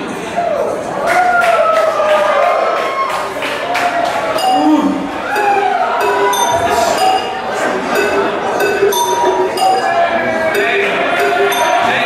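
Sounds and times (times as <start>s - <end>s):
loud music through pa system: 4.4s - 12.0s
short percussive hits: 4.4s - 12.0s.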